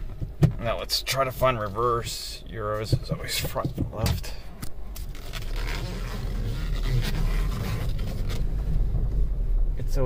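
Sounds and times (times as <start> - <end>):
gear lever scraping and clicking: 2.9 - 8.9
car engine idling: 6.5 - 10.0.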